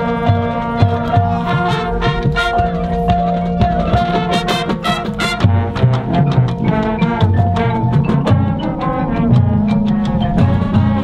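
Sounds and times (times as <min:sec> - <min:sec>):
brass chords: 0:00.0 - 0:11.0
drumline: 0:00.0 - 0:11.0
mallet percussion: 0:00.0 - 0:11.0
marching band playing: 0:00.0 - 0:11.0
sharp percussion strikes: 0:00.0 - 0:11.0.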